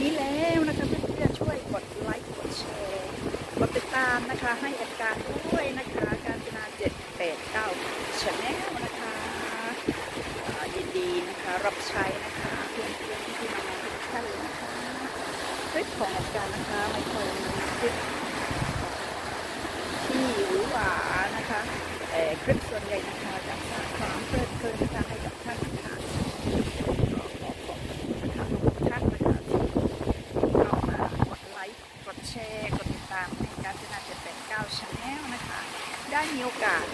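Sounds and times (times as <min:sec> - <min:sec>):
woman speaking: 0:00.0 - 0:09.9, 0:10.5 - 0:18.3, 0:20.0 - 0:26.2, 0:28.3 - 0:29.6, 0:30.6 - 0:36.9
wind and water rushing: 0:00.0 - 0:36.9
wind buffeting microphone: 0:00.0 - 0:36.9.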